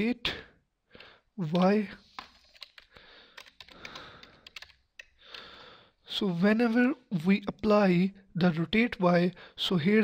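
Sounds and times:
computer keyboard typing: 2.2s - 5.5s.

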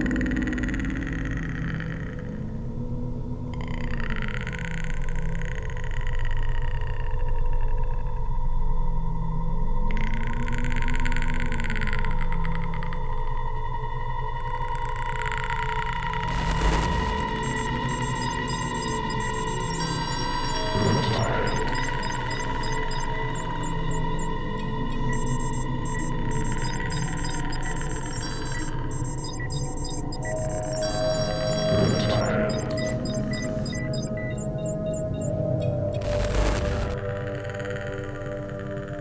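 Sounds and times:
electronic droning tones: 0.0s - 39.0s
fast high electronic ticking: 16.2s - 38.4s
computer-style beeps and blips: 16.2s - 39.0s.

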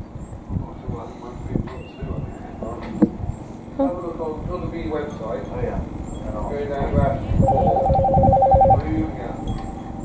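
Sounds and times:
electronic two-tone ring: 7.4s - 10.0s.

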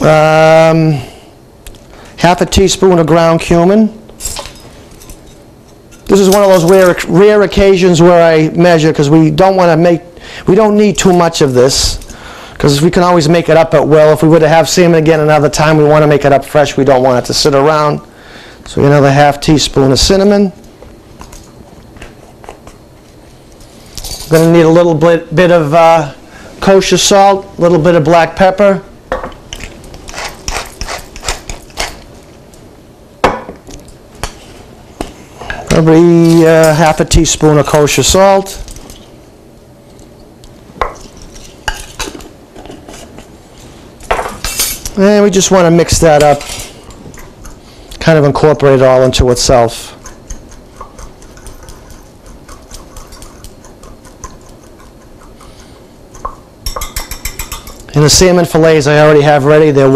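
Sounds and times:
metal utensil clinking glass bowl: 56.7s - 57.8s.

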